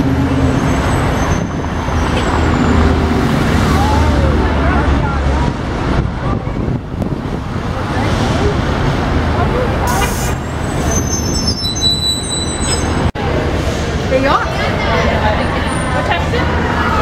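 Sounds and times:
cars and bus passing: 0.0s - 17.0s.

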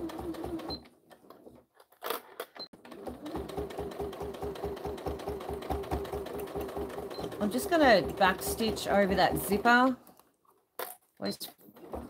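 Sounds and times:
sewing machine stitching: 2.8s - 9.8s, 11.6s - 12.0s.

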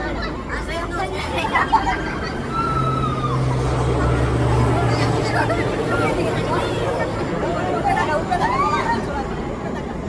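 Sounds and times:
faint crowd voices: 0.0s - 10.0s
low machine hum of ride: 0.0s - 10.0s.

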